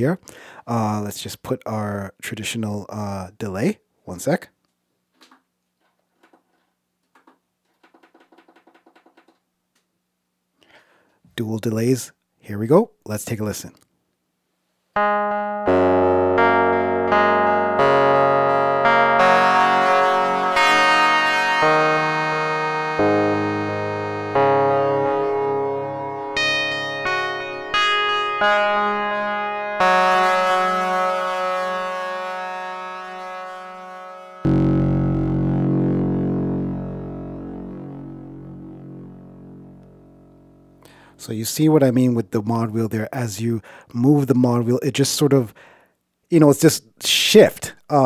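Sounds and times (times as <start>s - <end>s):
synthesizer chords with delay: 15.0s - 41.1s.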